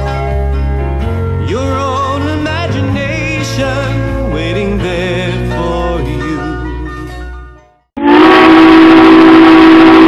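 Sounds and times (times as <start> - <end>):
steam locomotive whistle: 8.0 - 10.0.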